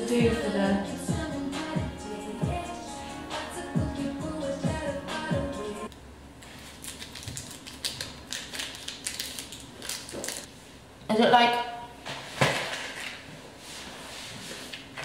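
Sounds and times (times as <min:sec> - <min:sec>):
plastic packaging crinkling: 0:06.4 - 0:10.5.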